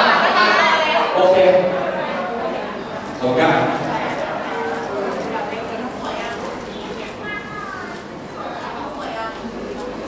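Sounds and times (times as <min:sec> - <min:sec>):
voices in large hall: 0:00.0 - 0:10.0.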